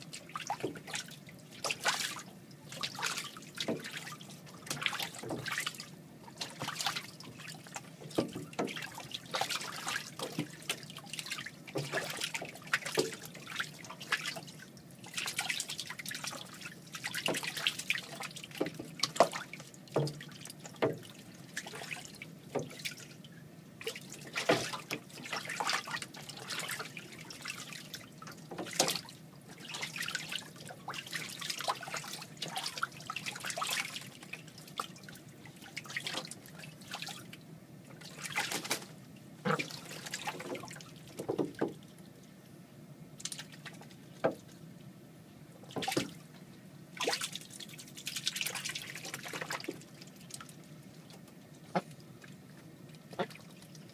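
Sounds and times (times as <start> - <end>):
ducks splashing in water: 0.0 - 23.2, 23.8 - 37.3, 37.9 - 41.8, 45.7 - 46.3, 46.9 - 53.9.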